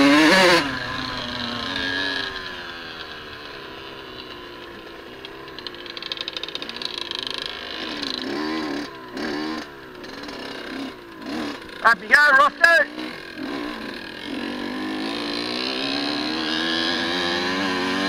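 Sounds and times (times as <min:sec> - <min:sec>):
dirt bike engine: 0:00.0 - 0:18.0.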